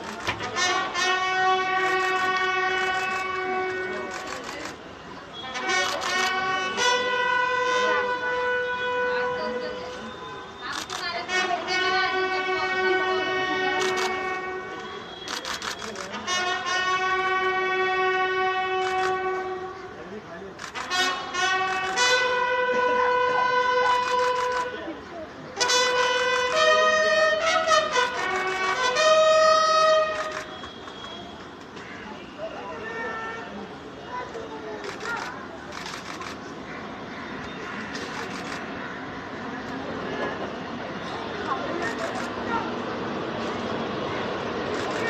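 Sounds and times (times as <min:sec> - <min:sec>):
faint murmuring voices: 0:00.0 - 0:45.0
brass bugle call: 0:00.2 - 0:04.5, 0:05.4 - 0:09.9, 0:10.8 - 0:20.0, 0:20.7 - 0:24.7, 0:25.6 - 0:31.3
sharp clicks: 0:37.9 - 0:38.7.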